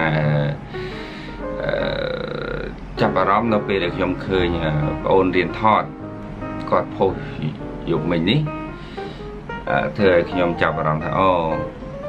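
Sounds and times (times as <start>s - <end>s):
man saying uhh: 0.0s - 0.6s, 1.6s - 2.7s
background music: 0.0s - 12.0s.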